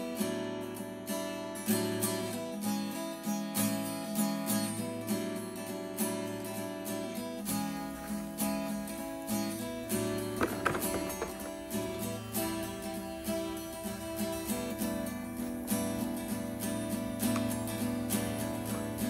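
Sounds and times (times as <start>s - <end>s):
acoustic guitar strumming: 0.0s - 19.0s.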